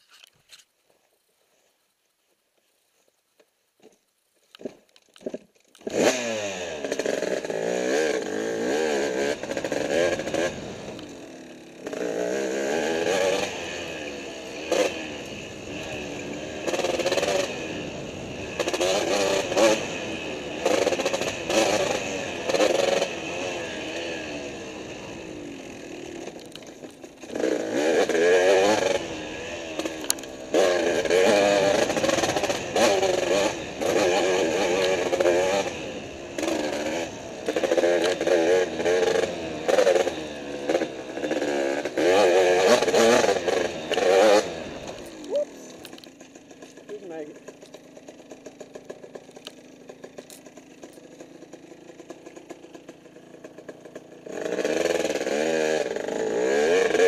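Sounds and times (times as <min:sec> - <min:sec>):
dirt bike engine revving: 0:05.8 - 0:57.0.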